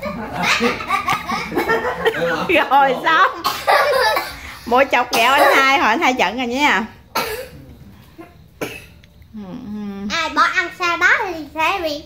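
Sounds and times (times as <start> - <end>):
person coughing: 7.2 - 7.6, 8.6 - 8.9
person humming: 9.4 - 10.1.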